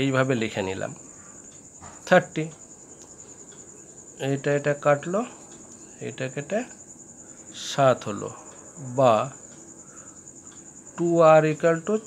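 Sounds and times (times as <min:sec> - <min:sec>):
person speaking: 0:00.0 - 0:01.1, 0:02.0 - 0:02.6, 0:04.2 - 0:06.8, 0:07.5 - 0:09.5, 0:11.0 - 0:12.0
crickets trilling: 0:00.0 - 0:12.0.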